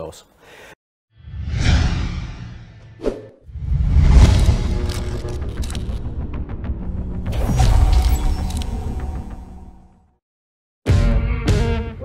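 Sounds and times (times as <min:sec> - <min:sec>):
low rumble: 0:01.3 - 0:07.2.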